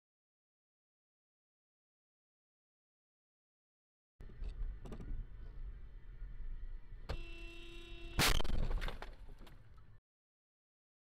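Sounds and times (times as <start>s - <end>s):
car horn blast: 7.1s - 8.5s.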